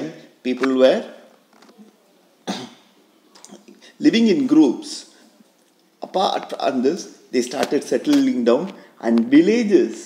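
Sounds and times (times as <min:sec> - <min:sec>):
person coughing: 0:02.5 - 0:02.8.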